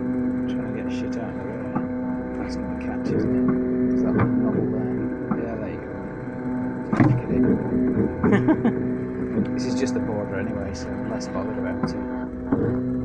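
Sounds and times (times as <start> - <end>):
stepper motors whining: 0.0 - 13.0.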